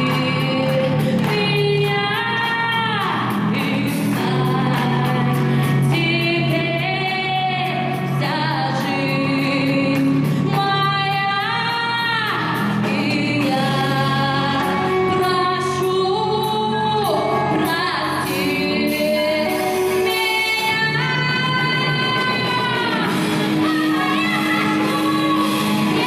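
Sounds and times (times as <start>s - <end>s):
music with a steady beat: 0.0s - 26.0s
woman singing into a microphone: 0.0s - 26.0s.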